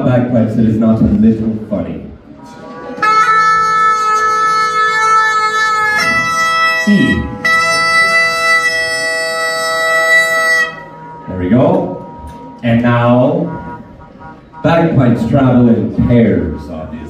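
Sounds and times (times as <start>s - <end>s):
bagpipe drone and chanter: 2.4s - 17.0s.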